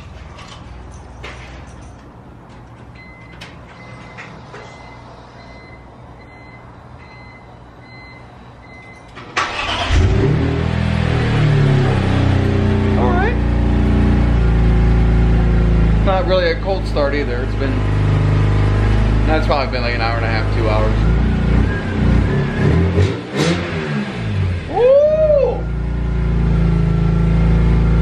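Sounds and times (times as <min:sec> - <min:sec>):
car engine cranking and idling: 0:08.9 - 0:24.8, 0:25.6 - 0:28.0.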